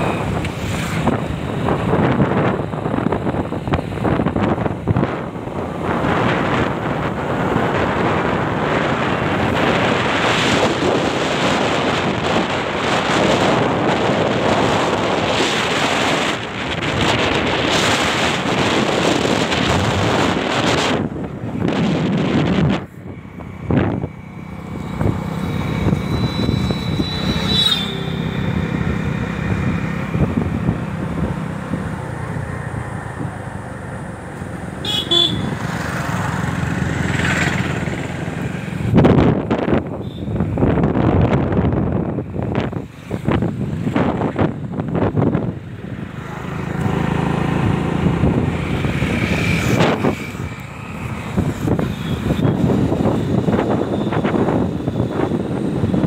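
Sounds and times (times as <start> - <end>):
wind buffeting microphone: 0.0 - 27.5, 28.1 - 34.7, 35.6 - 56.0
vehicle horn toots: 34.8 - 35.6.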